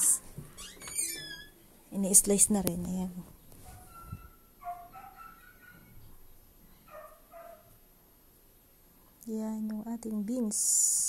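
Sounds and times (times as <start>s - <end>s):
faint high-pitched animal calls: 3.7s - 6.1s.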